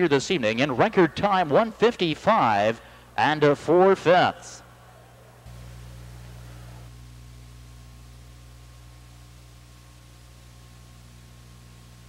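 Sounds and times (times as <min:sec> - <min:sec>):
low electrical hum: 0:00.0 - 0:12.0
faint hiss: 0:04.5 - 0:12.0.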